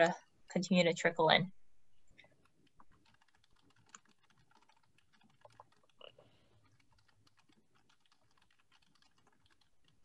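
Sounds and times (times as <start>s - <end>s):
typing on computer keyboard: 2.2s - 10.0s.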